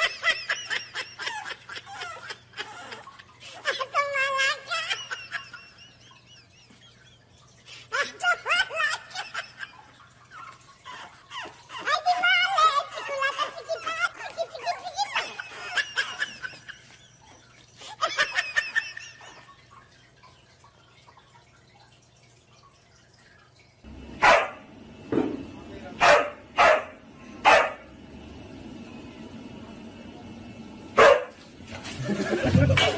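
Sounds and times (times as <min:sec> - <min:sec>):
person laughing: 0:12.8 - 0:19.4, 0:31.8 - 0:32.9
dog barking: 0:24.2 - 0:24.7, 0:26.0 - 0:27.9, 0:31.0 - 0:31.4.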